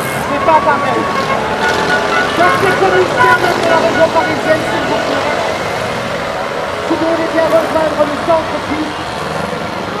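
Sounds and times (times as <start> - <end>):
announcer over loudspeaker: 0.0 - 9.1
race car engines: 0.0 - 10.0.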